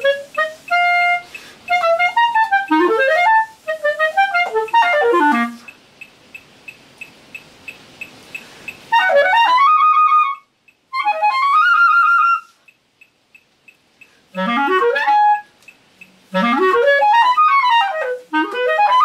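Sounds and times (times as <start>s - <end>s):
clarinet playing runs: 0.0s - 5.8s, 8.9s - 12.7s, 14.3s - 19.0s
faint ticking: 0.0s - 19.0s.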